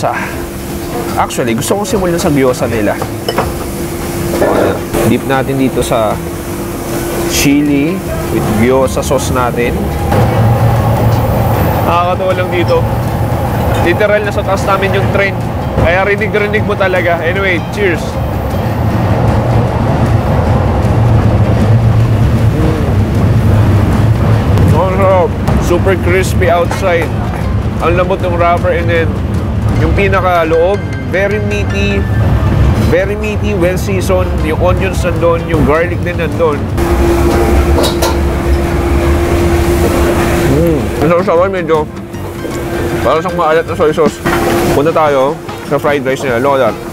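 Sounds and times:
train rumbling past: 0:00.0 - 0:46.9
train whine: 0:00.0 - 0:46.9.

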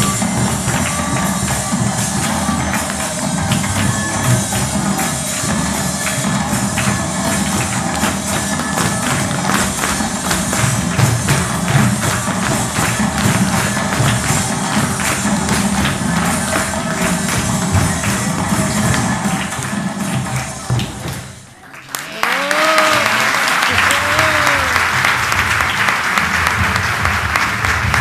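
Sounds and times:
folk dance music: 0:00.0 - 0:21.6, 0:22.2 - 0:28.0.

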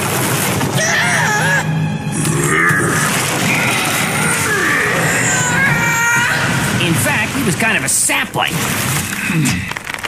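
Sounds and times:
background music: 0:00.0 - 0:08.6.

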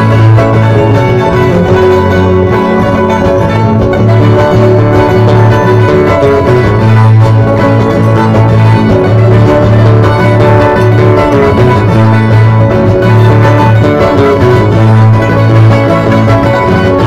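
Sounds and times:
string band playing a tune: 0:00.0 - 0:17.0.

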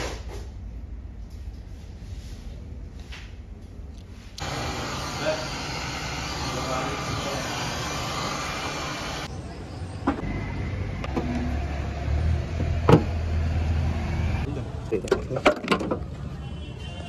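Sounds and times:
heat gun blower hissing: 0:04.4 - 0:09.3.

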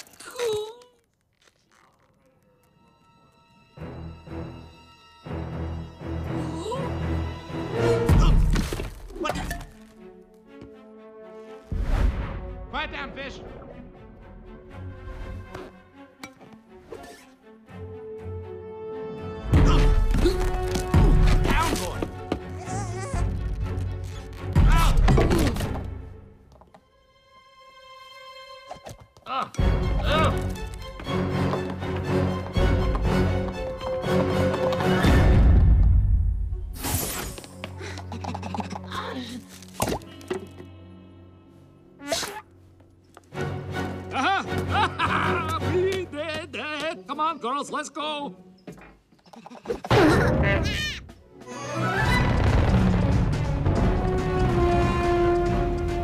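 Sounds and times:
film score music: 0:01.0 - 0:56.0.

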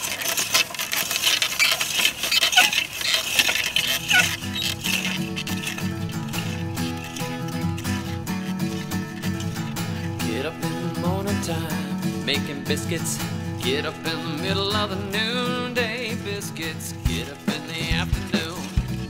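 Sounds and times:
acoustic country guitar music: 0:00.0 - 0:19.0
hoe blades scraping soil and leaves: 0:00.0 - 0:19.0.

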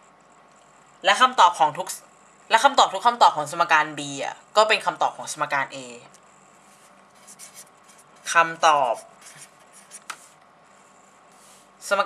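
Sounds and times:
pen scratching on paper: 0:06.7 - 0:10.4.

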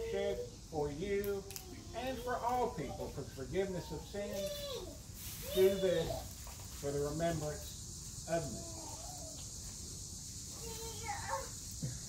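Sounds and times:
insect chorus drone: 0:00.0 - 0:12.0.

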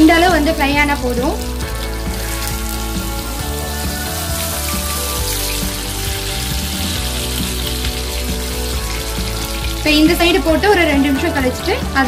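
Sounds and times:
background music with held notes: 0:00.0 - 0:12.0
fish sizzling in a pan: 0:00.0 - 0:12.0.

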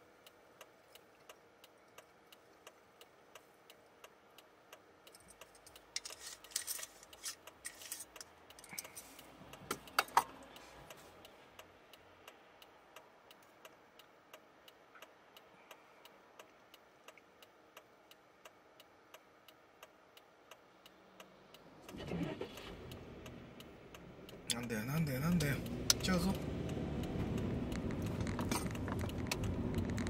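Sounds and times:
turn signal ticking: 0:00.0 - 0:06.0, 0:07.1 - 0:30.0
car and road rumble: 0:00.0 - 0:30.0.

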